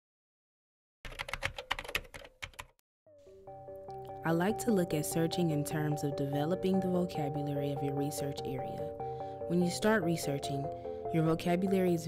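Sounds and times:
typing on computer keyboard: 1.1s - 2.8s
soft music with held notes: 3.1s - 12.0s.

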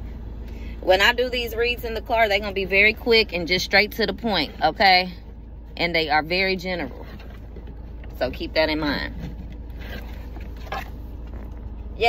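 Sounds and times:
car cabin hum: 0.0s - 12.0s.

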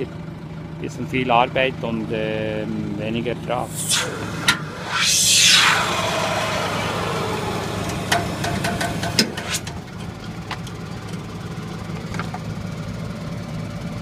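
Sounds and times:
falling whoosh: 3.4s - 9.9s
tractor engine running: 7.1s - 14.0s.

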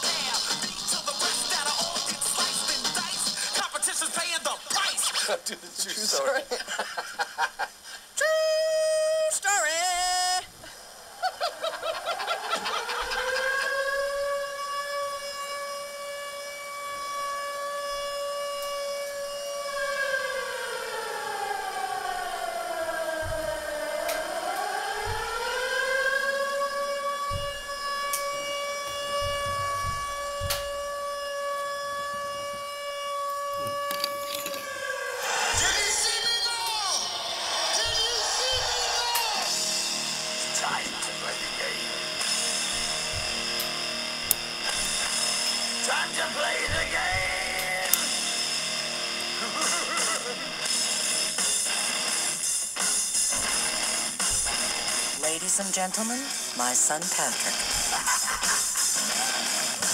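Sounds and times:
siren-like wail through radio: 8.3s - 59.9s.

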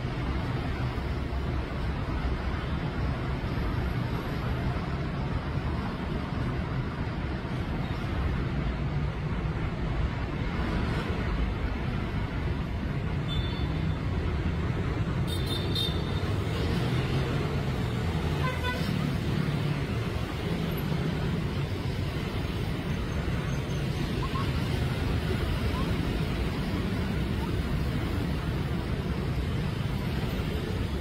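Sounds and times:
city road traffic: 0.0s - 31.0s.

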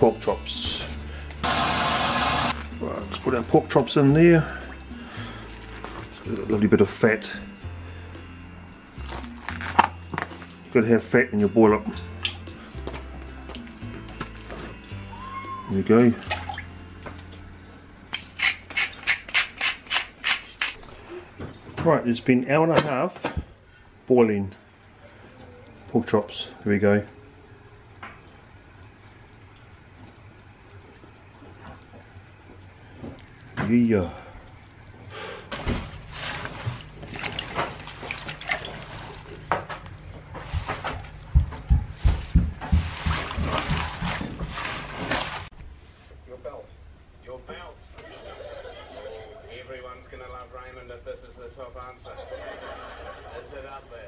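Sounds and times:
water splashing in a steel sink: 16.0s - 16.8s, 25.5s - 39.7s, 42.7s - 45.5s
low steady hum: 23.2s - 51.7s.

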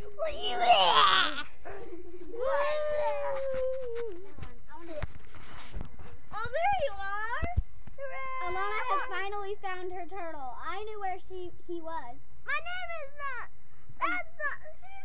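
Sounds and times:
child making wordless sounds: 0.0s - 5.0s, 6.3s - 15.0s.

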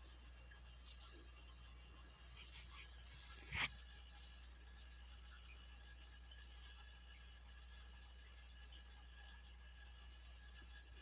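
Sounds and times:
cat collar jingling: 0.9s - 1.2s, 10.7s - 11.0s.

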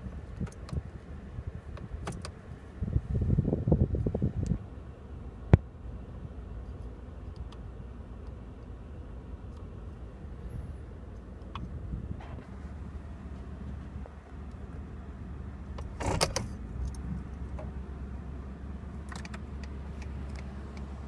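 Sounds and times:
engine idling: 0.0s - 21.0s.

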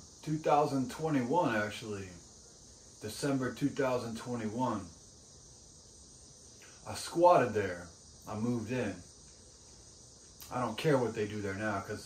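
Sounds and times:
steady high-pitched hiss: 0.0s - 12.0s
man speaking: 0.2s - 2.2s, 3.0s - 4.9s, 6.8s - 9.1s, 10.4s - 12.0s.

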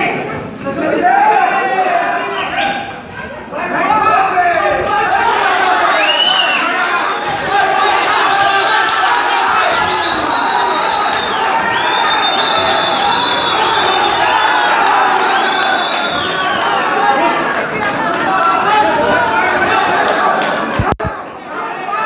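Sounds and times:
crowd shouting and cheering: 0.0s - 22.0s.

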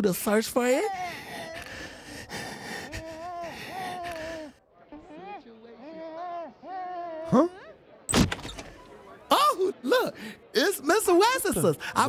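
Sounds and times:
breathy wheezing: 0.9s - 4.6s.

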